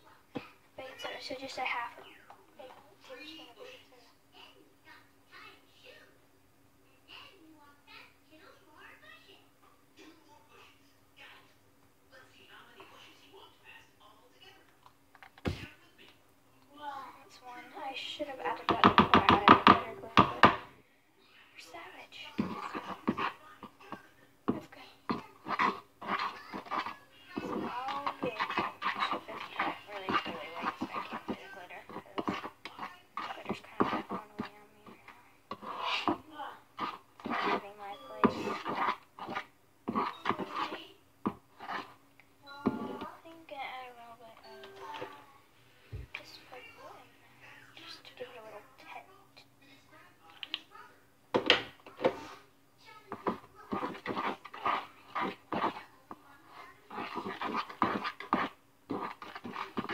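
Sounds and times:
girl talking and singing: 0:00.0 - 0:06.2, 0:16.6 - 0:20.6, 0:21.6 - 0:22.8, 0:26.2 - 0:35.2, 0:37.4 - 0:38.6, 0:42.4 - 0:45.5, 0:47.7 - 0:49.5
faint steady hum: 0:00.0 - 0:59.9.

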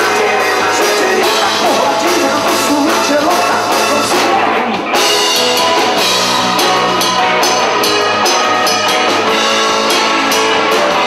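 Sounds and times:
person singing: 0:00.0 - 0:05.1
rock band playing live: 0:00.0 - 0:11.0.

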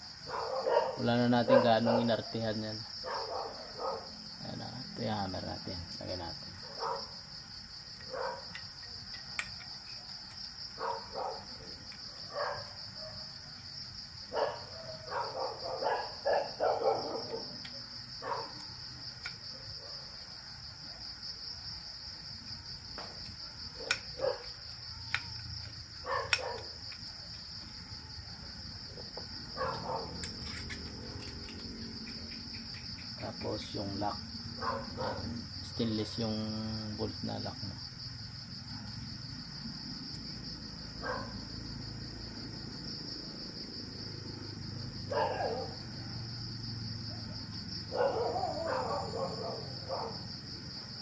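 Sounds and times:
crickets chirping: 0:00.0 - 0:51.0
clicks of small metal parts handled: 0:30.2 - 0:32.8.

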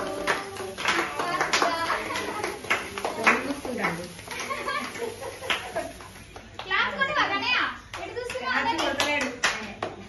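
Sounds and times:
hand clapping: 0:00.0 - 0:06.9, 0:07.9 - 0:10.0.

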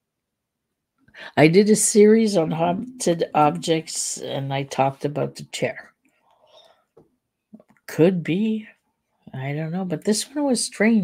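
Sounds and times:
woman speaking: 0:01.2 - 0:05.9, 0:07.9 - 0:11.0.

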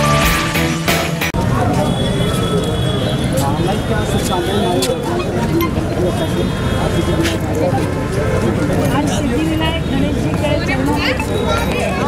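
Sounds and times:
people talking in a crowd: 0:00.0 - 0:12.0.

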